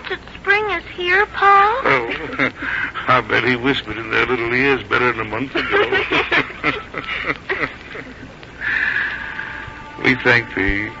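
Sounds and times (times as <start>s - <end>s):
people laughing: 1.9s - 3.7s, 5.4s - 8.4s.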